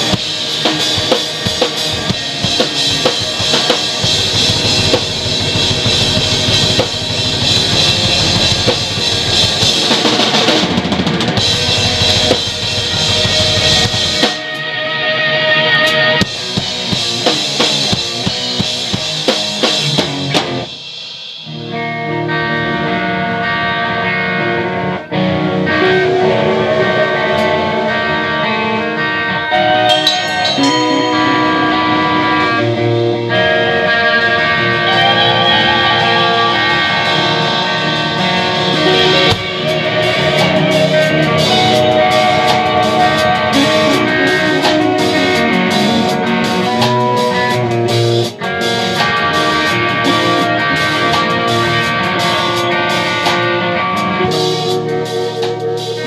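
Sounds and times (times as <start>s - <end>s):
electric guitars ringing chords: 0.0s - 20.8s, 21.5s - 56.0s
drum kit playing: 0.0s - 56.0s.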